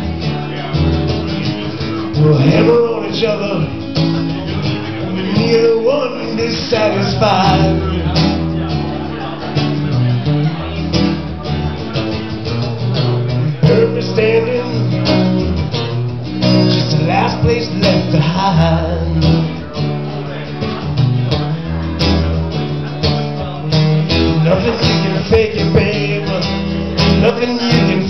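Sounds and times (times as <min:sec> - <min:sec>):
acoustic guitar strumming chords: 0:00.0 - 0:28.0.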